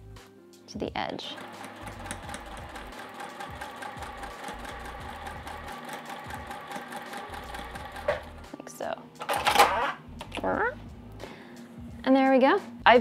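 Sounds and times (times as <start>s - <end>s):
sewing machine stitching: 1.2s - 8.4s.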